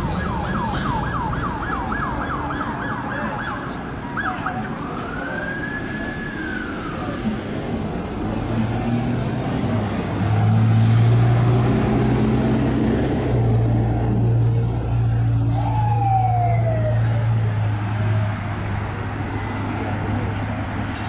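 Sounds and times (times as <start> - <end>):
police siren wail: 0.0 - 7.7, 15.0 - 18.3.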